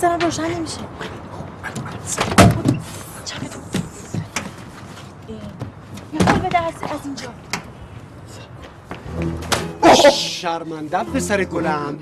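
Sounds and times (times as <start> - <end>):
person crying out: 9.8 - 10.4.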